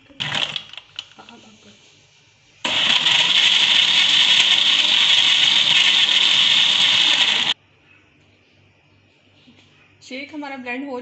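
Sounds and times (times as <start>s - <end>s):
countertop blender running: 2.6s - 7.6s.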